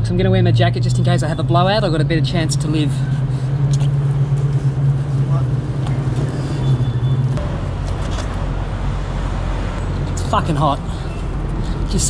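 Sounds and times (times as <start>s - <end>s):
vehicle engine idling: 0.0s - 8.9s
low traffic rumble: 0.0s - 12.0s.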